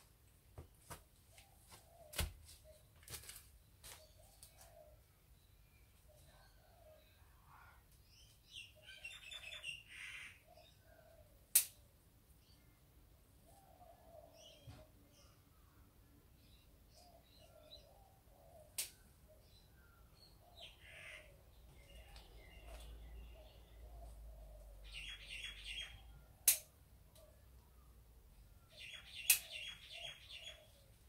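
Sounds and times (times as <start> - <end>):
small birds chirping: 1.2 - 31.0
sharp clicks picking flowers: 11.5 - 11.8, 18.7 - 19.0, 26.4 - 27.3, 29.2 - 29.5.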